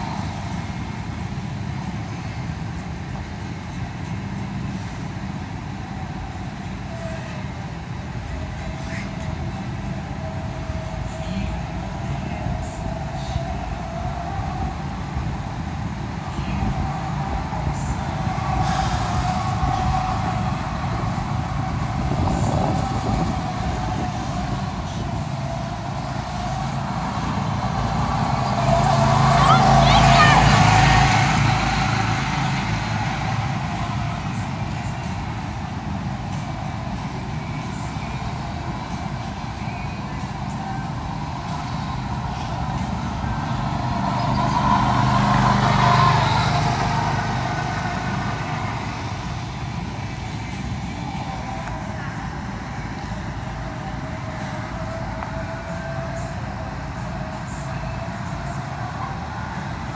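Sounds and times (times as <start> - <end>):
go-kart engines running: 0.0 - 59.9.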